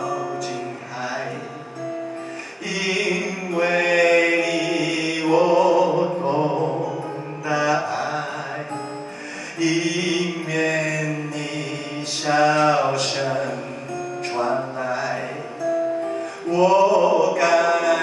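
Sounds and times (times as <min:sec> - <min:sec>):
acoustic guitar: 0:00.0 - 0:18.0
man singing: 0:00.0 - 0:18.0.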